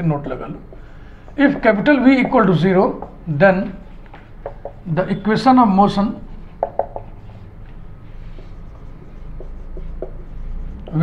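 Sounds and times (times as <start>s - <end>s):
marker writing on whiteboard: 0.0s - 11.0s.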